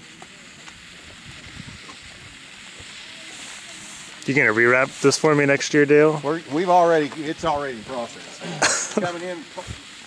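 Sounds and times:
firework fountain hissing sparks: 0.0 - 10.0.

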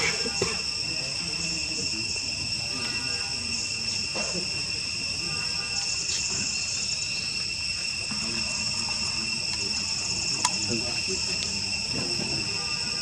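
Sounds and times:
insect chorus: 0.0 - 13.0.

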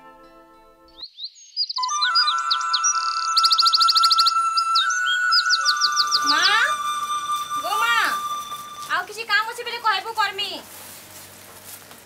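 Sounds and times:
quick high chirps: 1.8 - 9.0
tones sliding down in pitch: 1.8 - 9.0
steady high tone: 1.8 - 10.2.

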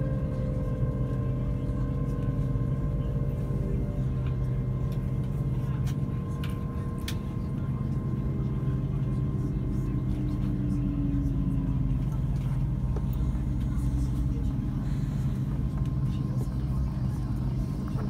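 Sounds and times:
electric train running hum: 0.0 - 18.0
faint train whine: 0.0 - 18.0.

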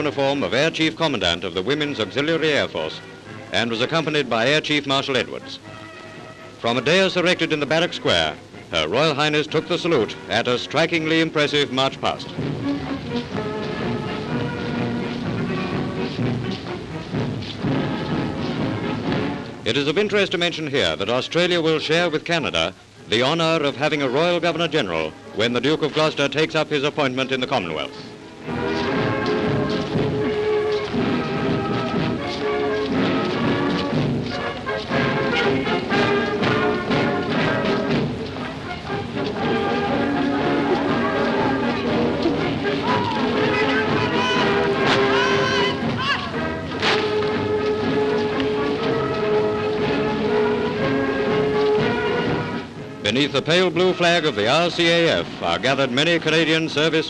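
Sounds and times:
drums: 0.0 - 57.0
military band march music: 0.0 - 57.0.

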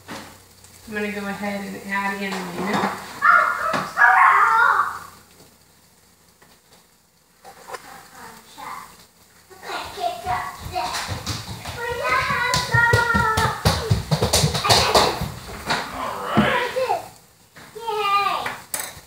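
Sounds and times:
young child's high voice: 3.1 - 5.2, 7.8 - 15.4, 16.3 - 18.7
sharp taps and knocks: 9.8 - 16.5.

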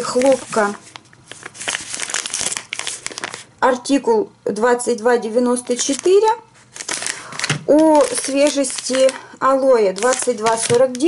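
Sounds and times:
plastic wrapper crinkling: 0.0 - 3.6, 5.5 - 11.0.

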